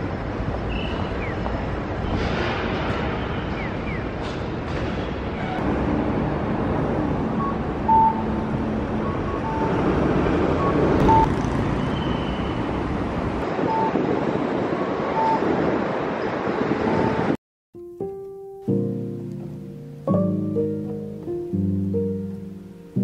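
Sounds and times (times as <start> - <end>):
road traffic: 0.0 - 17.4, 18.8 - 23.0
short high beeps: 7.4 - 8.4.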